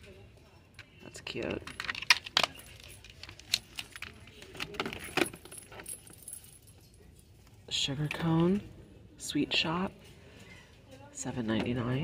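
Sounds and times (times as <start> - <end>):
metal chain bracelets jingling: 5.0 - 7.4.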